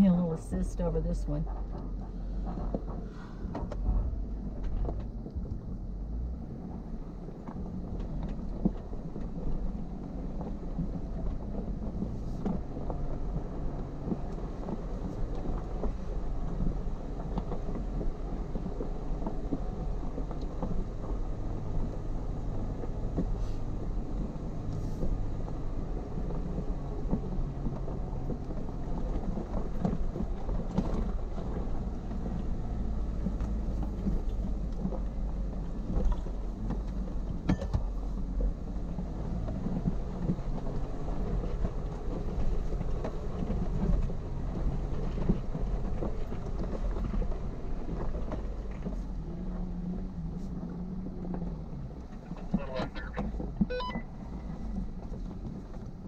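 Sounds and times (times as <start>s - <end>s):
car engine running low: 0.0s - 56.0s
tires crunching over rock: 1.3s - 56.0s.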